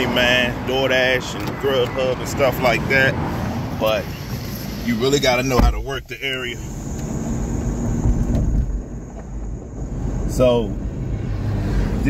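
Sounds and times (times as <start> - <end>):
car road rumble from inside: 0.0 - 12.0.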